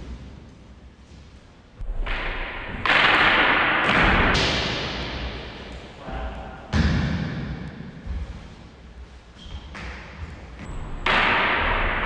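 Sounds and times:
practice swords striking: 1.9 - 8.2, 9.9 - 12.0.

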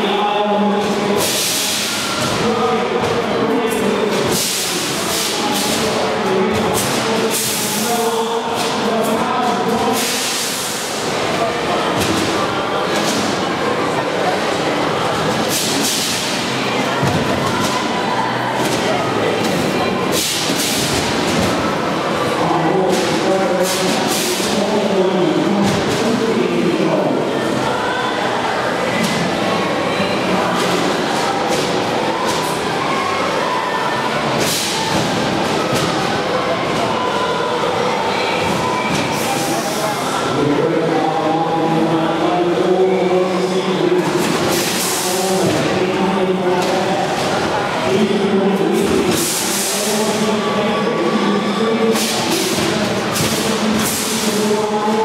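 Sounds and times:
voice over public address: 44.9 - 55.0.

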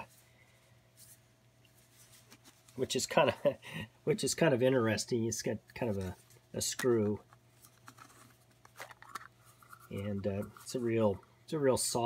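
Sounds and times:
plastic screw-top case unscrewing: 6.8 - 10.7.

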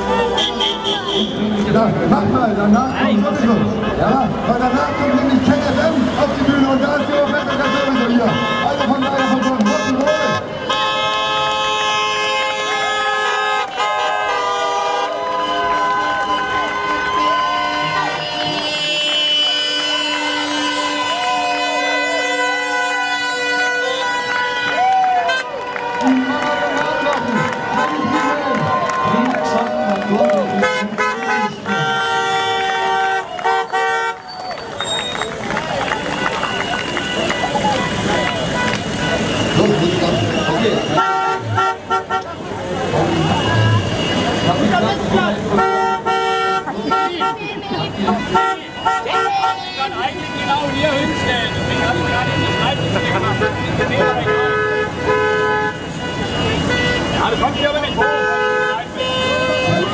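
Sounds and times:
car horns honking: 0.0 - 59.9
people's voices: 0.0 - 59.9.

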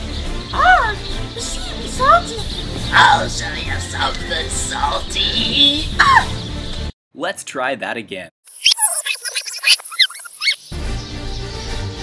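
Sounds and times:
background music: 0.0 - 6.9, 10.7 - 12.0
rewind sound effect chirps: 8.5 - 10.7.

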